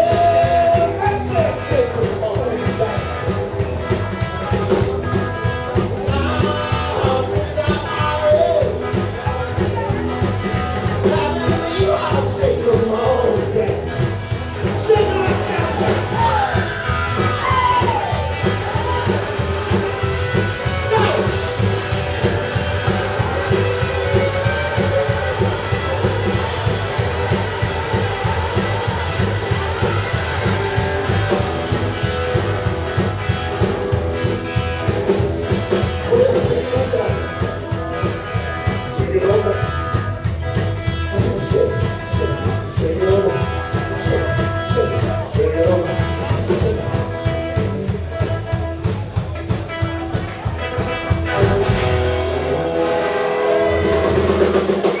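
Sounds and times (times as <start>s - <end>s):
live rockabilly band playing: 0.0s - 55.0s
pulsing bass line: 0.0s - 55.0s.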